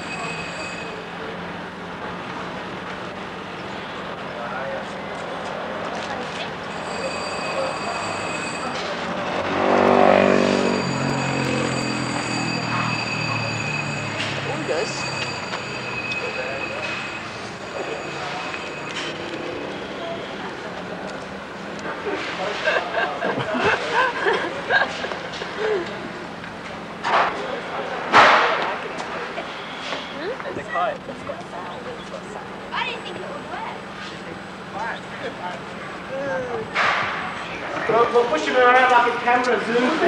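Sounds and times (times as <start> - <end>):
outdoor background noise: 0.0 - 40.0
vehicle passing by: 9.1 - 15.0.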